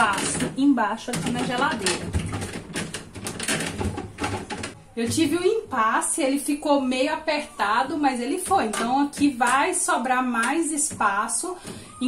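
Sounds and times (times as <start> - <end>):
shelf clicking and knocking: 0.0 - 5.3, 8.3 - 11.8.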